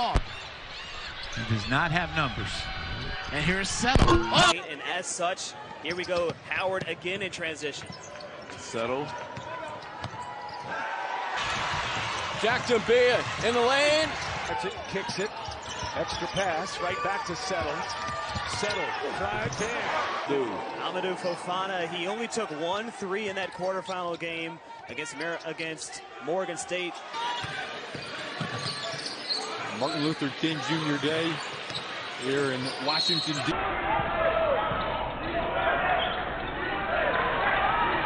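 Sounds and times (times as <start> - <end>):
crowd noise in a large hall: 0.0 - 38.0.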